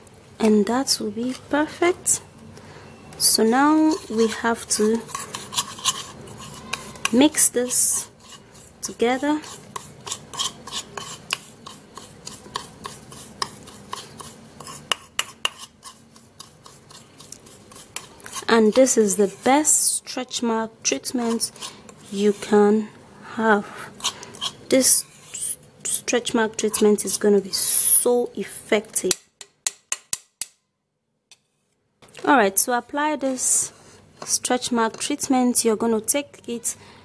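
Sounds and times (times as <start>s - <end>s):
metal spoon stirring gritty paste: 0.8s - 2.2s, 2.9s - 22.7s, 23.5s - 27.7s, 33.2s - 35.4s.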